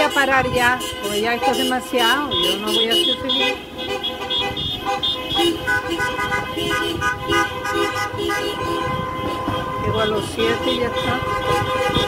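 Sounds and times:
car horns honking: 0.0s - 12.0s.

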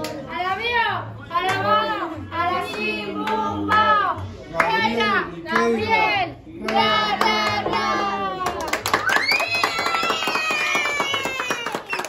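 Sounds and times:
children clapping and cheering: 7.2s - 12.0s.

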